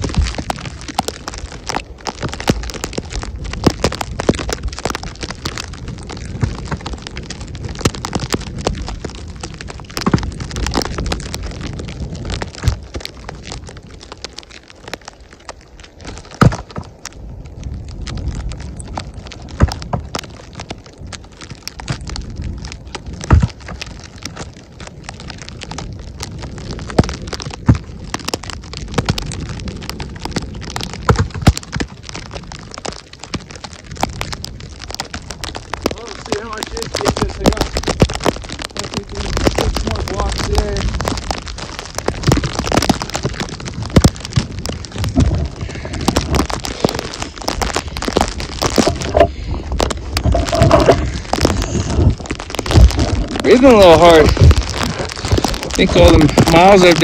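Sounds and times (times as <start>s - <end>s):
wind on microphone: 0.0s - 57.0s
firewood thudding down: 23.2s - 23.6s.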